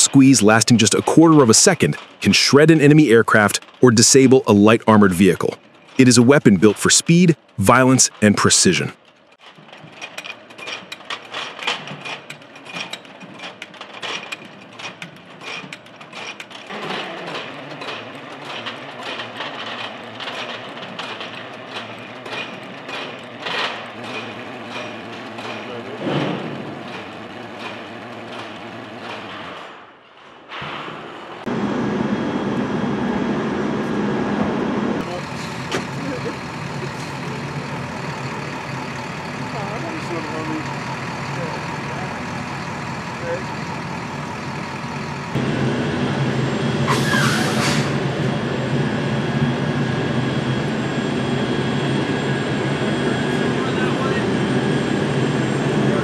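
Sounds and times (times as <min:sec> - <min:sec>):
steady engine noise: 0:00.0 - 0:08.9, 0:10.2 - 0:29.8, 0:31.4 - 0:56.0
ammunition loader clattering: 0:09.4 - 0:29.7.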